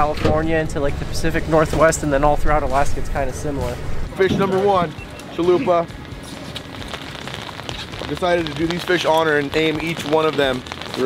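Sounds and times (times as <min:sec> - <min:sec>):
wind: 0:00.0 - 0:11.0
rain falling on rain gear: 0:04.6 - 0:11.0.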